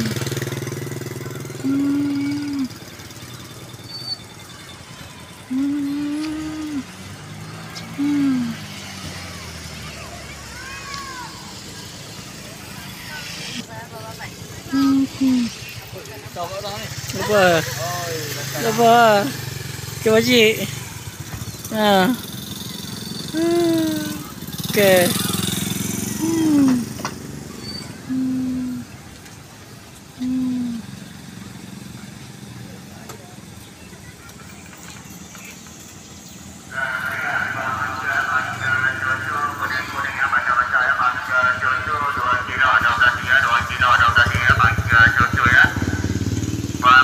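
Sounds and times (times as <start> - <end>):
people's voices: 0.0 - 31.1, 32.0 - 47.0
motorcycle engine idling: 0.0 - 47.0.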